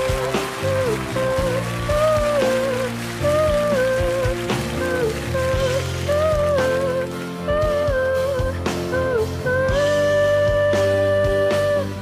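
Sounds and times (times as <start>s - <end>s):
band accompaniment: 0.0s - 12.0s
girl singing a slow ballad: 0.0s - 12.0s.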